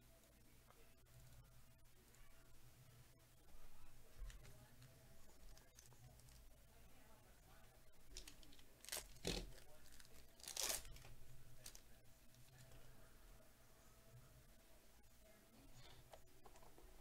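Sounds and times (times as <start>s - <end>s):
plastic wrapper crinkling: 8.1s - 11.8s
plastic wrapper ripping: 8.1s - 11.8s.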